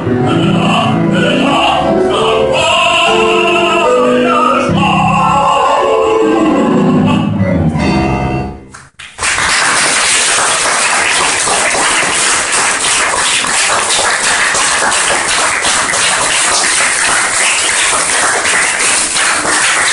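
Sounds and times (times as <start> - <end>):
piano and voice chord: 0.0 - 8.7
audience applauding: 8.8 - 19.9.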